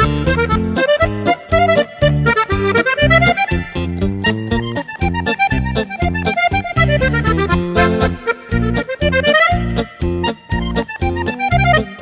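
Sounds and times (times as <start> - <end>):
accordion polka music: 0.0 - 12.0.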